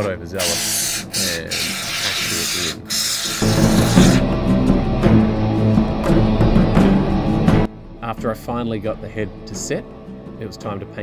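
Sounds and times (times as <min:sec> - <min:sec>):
aerosol foam can hissing: 0:00.4 - 0:04.3
loud guitar music: 0:03.4 - 0:10.8.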